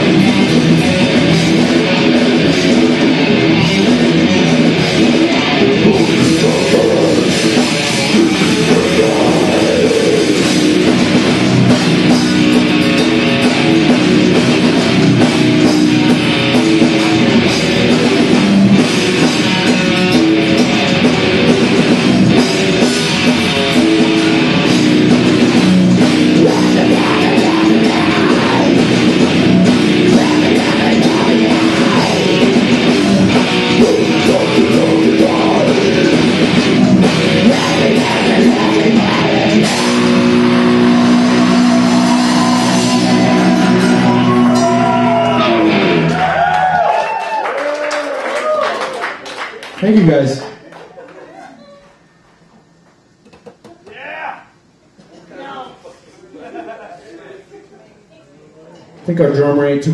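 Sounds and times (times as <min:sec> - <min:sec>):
death metal band playing live: 0:00.0 - 0:46.9
guitar tones ringing out: 0:00.0 - 0:47.0.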